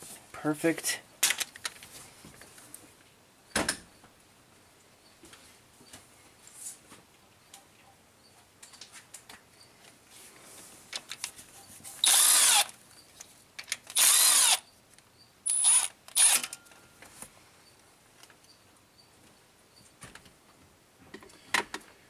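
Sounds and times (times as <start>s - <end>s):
cordless power tool spinning bolts: 12.0s - 12.7s, 13.8s - 14.6s, 15.5s - 16.6s.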